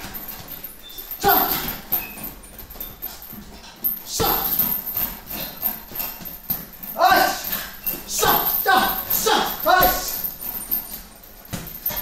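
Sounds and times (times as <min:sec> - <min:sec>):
person grunting: 0:07.0 - 0:07.6, 0:08.2 - 0:10.1.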